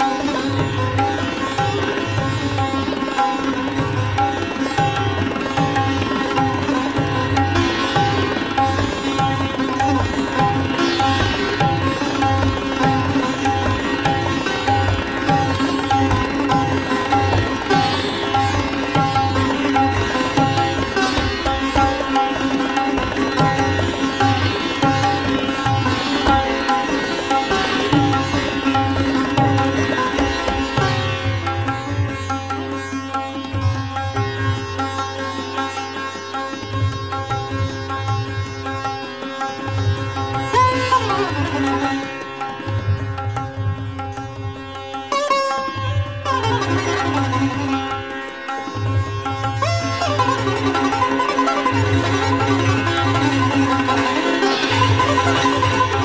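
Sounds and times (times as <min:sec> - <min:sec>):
fast sitar playing: 0:00.0 - 0:56.0
tabla strokes: 0:00.0 - 0:56.0.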